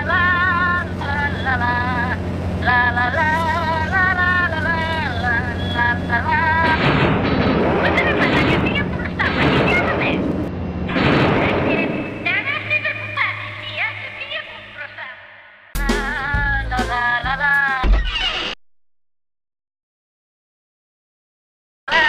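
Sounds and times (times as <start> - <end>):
harsh noisy rumble with crackles: 0.0 - 14.4
steady low hum: 0.0 - 15.1.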